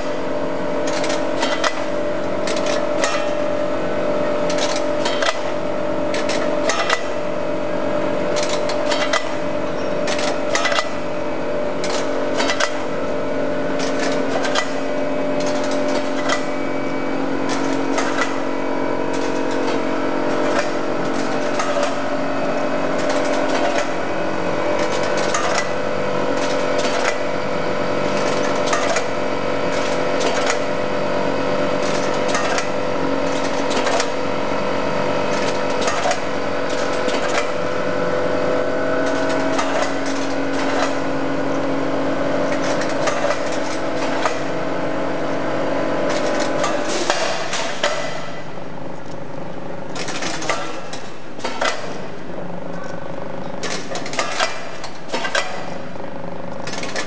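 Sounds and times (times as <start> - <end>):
feeder trays humming: 0.0 - 57.0
clicks and ticks of machine: 8.4 - 9.4.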